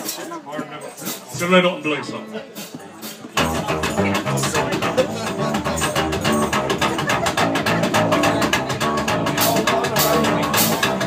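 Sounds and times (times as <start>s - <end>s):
drum kit: 2.6s - 11.0s
electric guitar: 3.4s - 11.0s
upright double bass: 3.4s - 11.0s.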